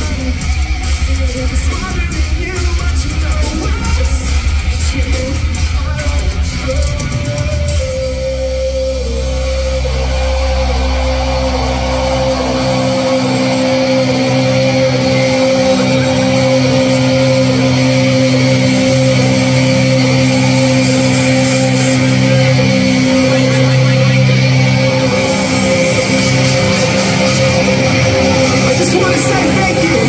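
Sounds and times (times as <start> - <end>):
heavy metal band playing live: 0.0 - 30.0.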